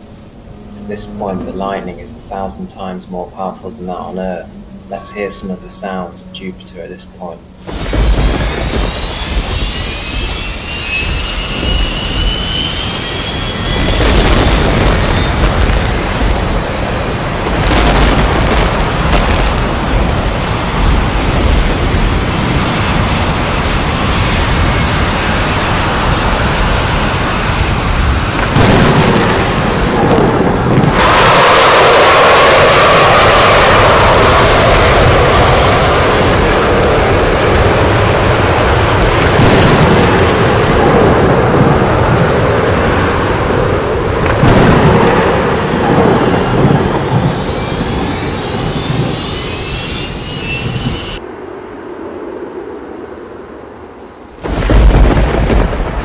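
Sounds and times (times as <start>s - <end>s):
rumbling hissing storm noise: 0.0s - 56.0s
faint rising whistles: 0.1s - 14.2s, 46.1s - 54.4s.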